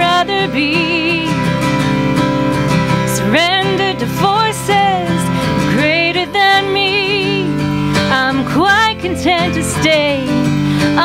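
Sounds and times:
woman singing slow song: 0.0s - 1.6s, 3.1s - 11.0s
acoustic guitar: 0.0s - 11.0s.

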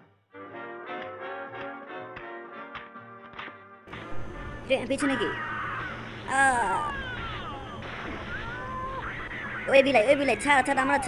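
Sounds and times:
background music: 0.0s - 6.9s
cartoon crow cawing: 5.0s - 6.0s.

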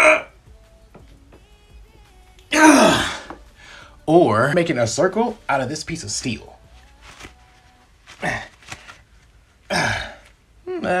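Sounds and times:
man grunting with effort: 0.0s - 0.3s, 2.5s - 3.4s, 9.7s - 11.0s.

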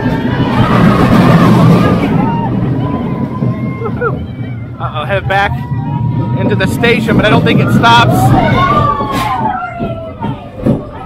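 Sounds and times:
roller coaster rumbling on track: 0.0s - 11.0s.

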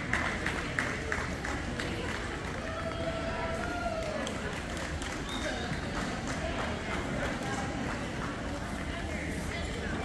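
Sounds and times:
chatter echoing in a hall: 0.0s - 10.0s.

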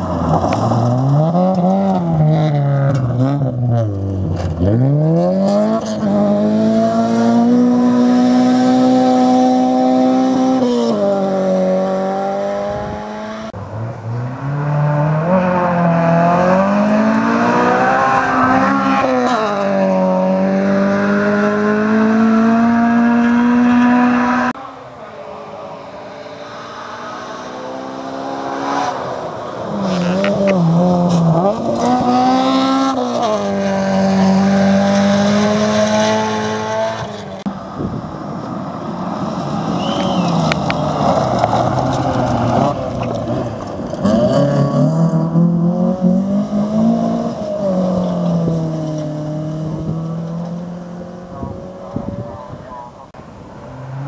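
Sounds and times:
rally cars passing at full throttle: 0.0s - 54.0s.

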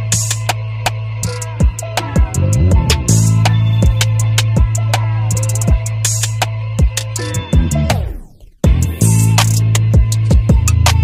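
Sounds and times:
hi-hats: 0.0s - 11.0s
hip hop instrumental beat: 0.0s - 11.0s
low bass: 0.0s - 11.0s
deep kick drums: 1.6s - 4.9s, 8.6s - 9.1s.

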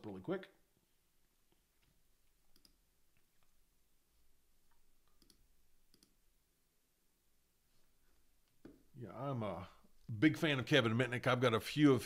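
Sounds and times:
faint computer clicks: 5.1s - 6.2s.

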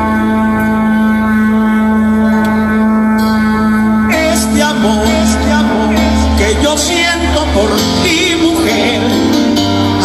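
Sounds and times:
live band holding a long chord: 0.0s - 10.0s.

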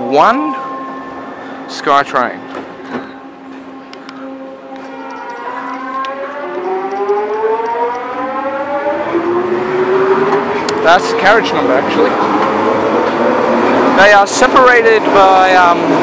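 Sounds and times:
train motor whine rising: 0.5s - 14.7s.

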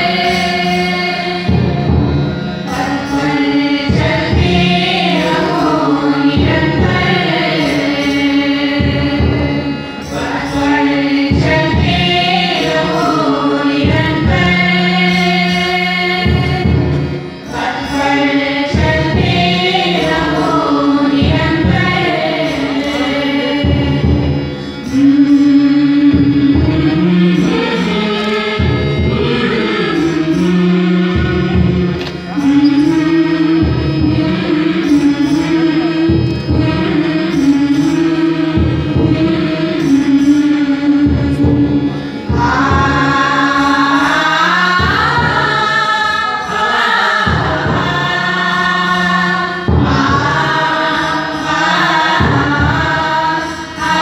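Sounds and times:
men and women singing in unison: 0.0s - 2.0s, 2.7s - 54.0s
harmonium: 0.0s - 54.0s.

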